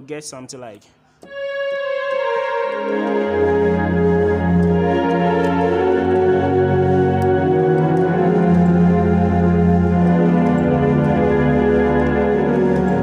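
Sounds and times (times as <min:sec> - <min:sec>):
electronic keyboard organ chords: 0:01.2 - 0:13.0
keyboard bass notes: 0:01.2 - 0:13.0.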